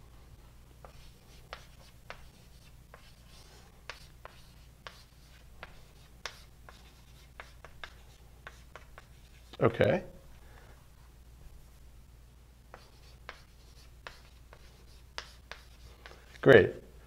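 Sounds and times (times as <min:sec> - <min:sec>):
low room hum: 0:00.0 - 0:17.0
faint scratching strokes: 0:00.8 - 0:09.6, 0:12.7 - 0:16.5.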